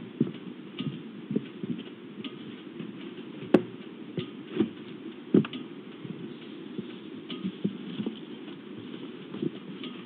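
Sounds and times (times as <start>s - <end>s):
soft knocks and scuffles: 2.8s - 5.5s.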